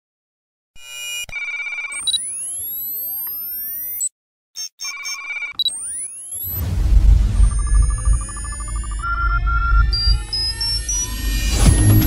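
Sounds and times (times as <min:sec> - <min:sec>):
electronic beeping tones: 0:00.8 - 0:12.0
high rising synth sweeps: 0:06.2 - 0:12.0.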